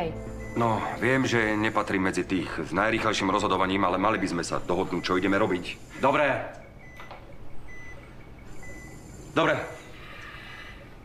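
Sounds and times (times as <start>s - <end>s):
low room hum: 0.0s - 11.0s
patient monitor beeping: 0.0s - 11.0s.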